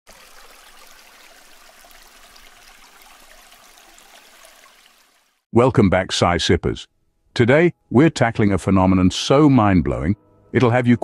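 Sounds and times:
trickling water: 0:00.1 - 0:05.4.

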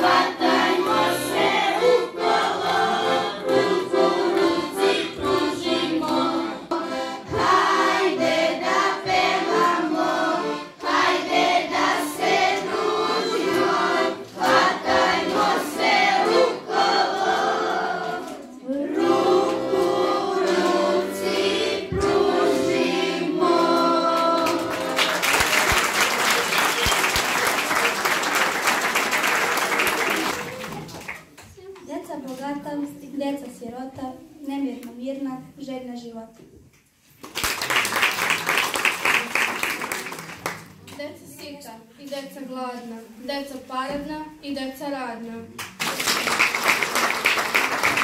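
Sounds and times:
accordion: 0:00.0 - 0:25.8
children's choir singing: 0:00.0 - 0:30.6
audience applauding: 0:24.4 - 0:31.4, 0:37.2 - 0:40.8, 0:45.7 - 0:48.0.

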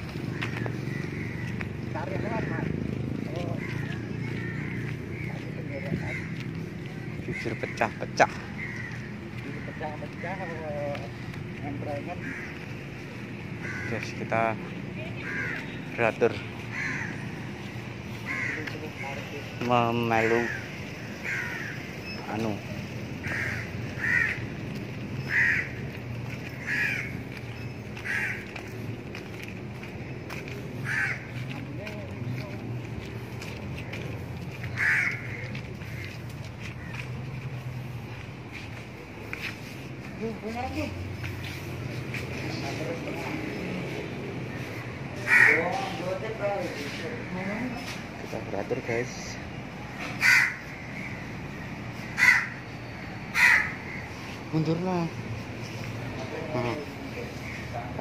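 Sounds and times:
crow cawing: 0:00.0 - 0:40.2, 0:44.5 - 0:48.0, 0:49.4 - 0:54.7, 0:55.6 - 0:58.0.

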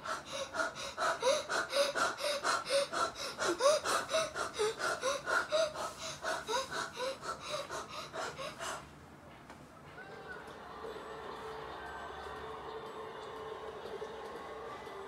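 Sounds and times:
rapid rhythmic breathing: 0:00.0 - 0:09.5.

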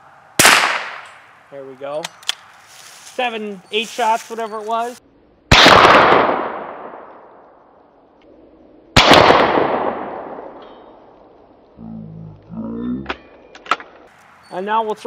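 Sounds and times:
rifle shots echoing: 0:00.4 - 0:01.3, 0:05.5 - 0:07.5, 0:08.9 - 0:11.0.

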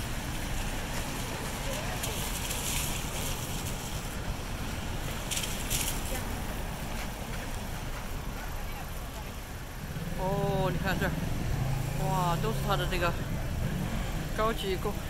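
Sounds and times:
car tyres hissing on wet road: 0:00.0 - 0:15.0
traffic rumble: 0:00.0 - 0:15.0.

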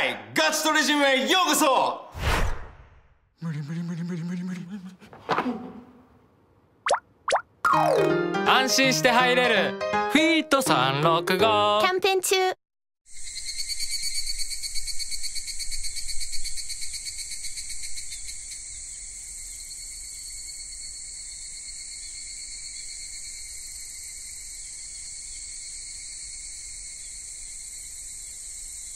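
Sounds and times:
insect chirping: 0:13.1 - 0:28.9.

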